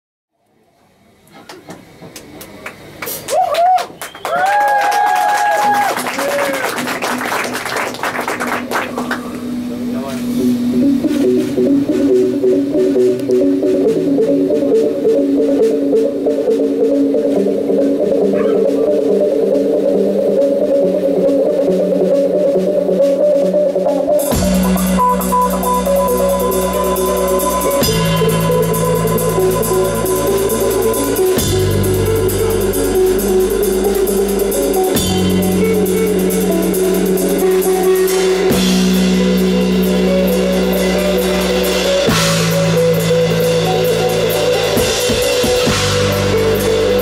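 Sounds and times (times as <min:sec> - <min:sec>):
electric guitar notes: 0:05.5 - 0:47.0
deep bass line: 0:08.6 - 0:47.0
drum kit with cymbals: 0:24.0 - 0:47.0.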